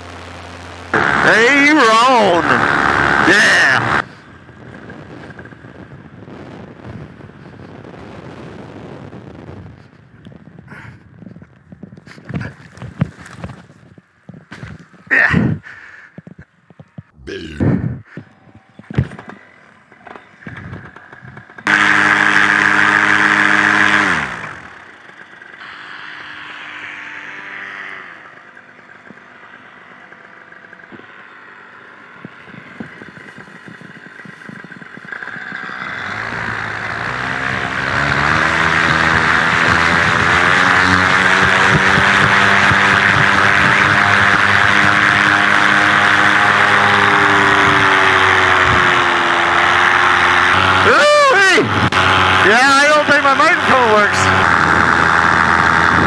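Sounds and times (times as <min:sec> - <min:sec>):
paramotor engine and propeller: 0:00.0 - 0:17.2, 0:18.0 - 0:56.0.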